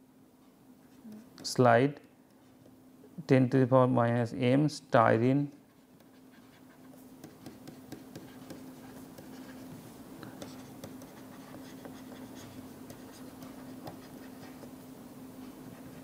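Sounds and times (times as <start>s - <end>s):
steady low hum: 0.0s - 16.0s
stylus tapping and scratching on tablet: 5.6s - 14.8s.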